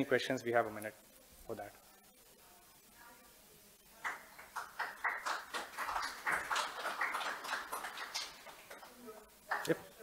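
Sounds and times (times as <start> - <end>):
scattered applause: 4.0 - 9.8.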